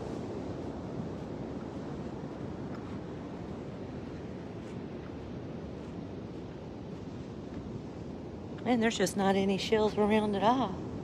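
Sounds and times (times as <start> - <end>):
ocean surf washing ashore: 0.0 - 11.0
wind buffeting microphone: 0.0 - 11.0.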